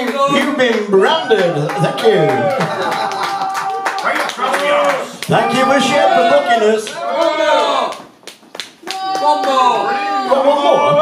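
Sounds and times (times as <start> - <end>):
audience clapping: 0.0 - 9.9
voices and laughter: 1.9 - 3.6.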